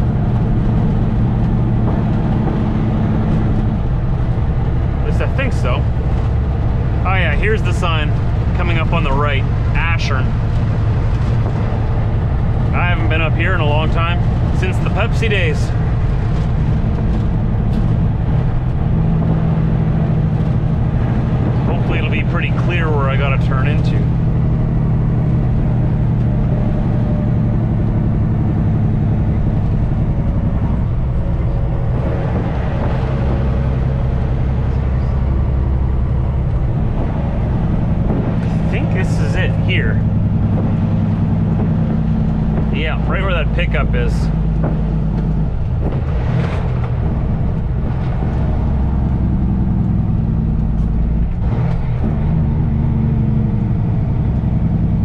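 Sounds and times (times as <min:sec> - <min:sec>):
diesel truck engine under load: 0:00.0 - 0:55.0.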